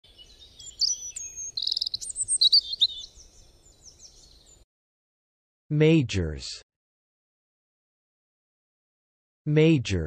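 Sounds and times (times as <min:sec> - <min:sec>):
bird trill: 0:00.0 - 0:04.6
small birds chirping: 0:00.0 - 0:04.7.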